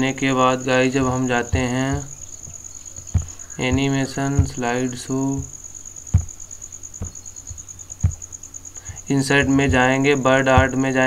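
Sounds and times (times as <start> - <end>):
cricket trilling: 0.0 - 11.0
soft low thumps: 0.0 - 11.0.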